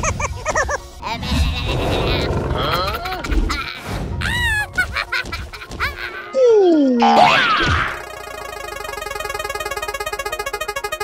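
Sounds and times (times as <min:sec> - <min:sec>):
squawky cartoon animal sounds: 0:01.0 - 0:04.6.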